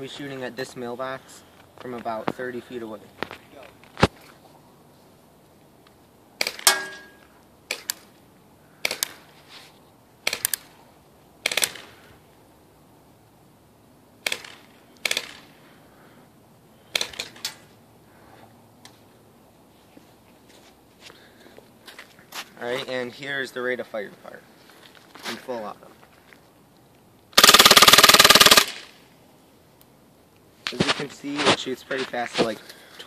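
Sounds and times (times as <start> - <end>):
airsoft gun shots: 6.4 - 8.0, 8.8 - 9.2, 10.2 - 10.7, 11.4 - 12.0, 14.2 - 15.6, 16.9 - 17.6, 27.4 - 29.0.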